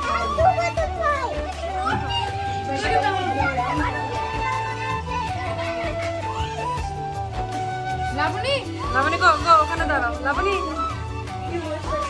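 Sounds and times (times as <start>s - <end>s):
children chattering: 0.0s - 7.4s.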